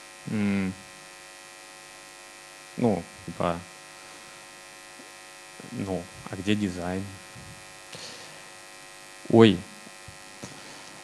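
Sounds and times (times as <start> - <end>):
electrical mains hum: 0.0 - 11.0
person speaking: 0.3 - 0.8, 2.8 - 3.7, 5.6 - 8.2.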